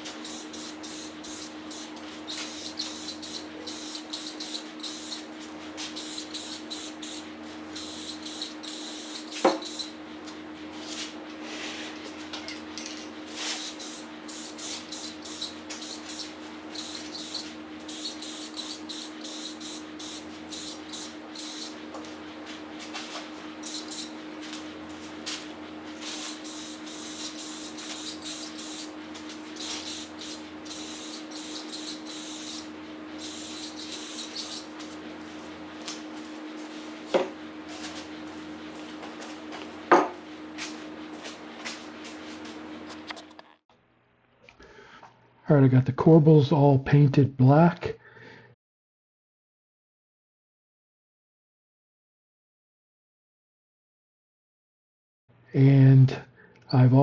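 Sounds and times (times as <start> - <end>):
spray paint can hissing: 0.0 - 10.0, 13.3 - 22.1, 22.8 - 35.0
steady low hum: 0.0 - 46.0.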